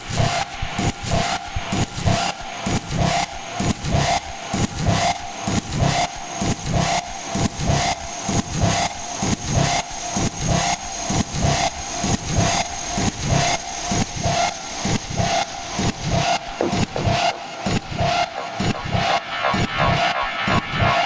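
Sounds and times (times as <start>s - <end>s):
distorted rasping noise loop: 12.3s - 21.0s.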